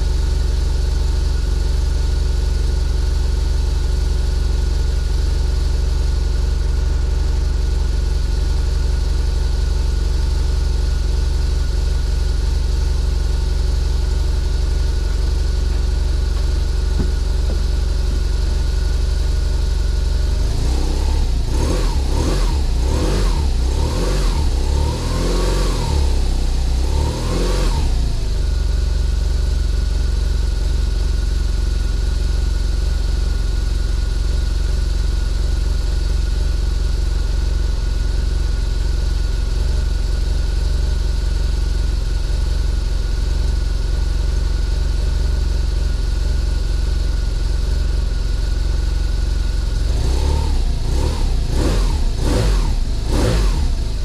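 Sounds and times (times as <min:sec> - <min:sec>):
motorcycle engine revving and idling: 0:00.0 - 0:54.0.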